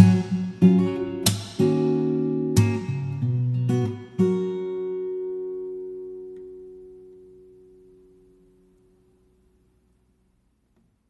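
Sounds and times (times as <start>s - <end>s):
acoustic guitar chord ringing: 0.0s - 9.6s.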